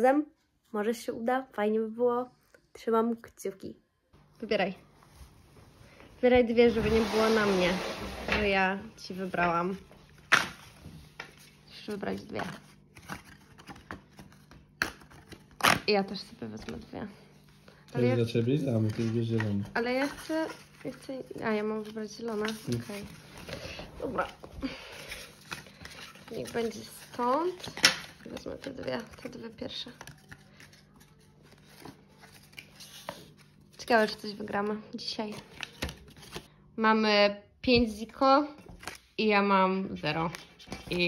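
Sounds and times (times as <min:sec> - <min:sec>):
paper tickets rustling: 0:11.2 - 0:15.5, 0:17.8 - 0:36.5.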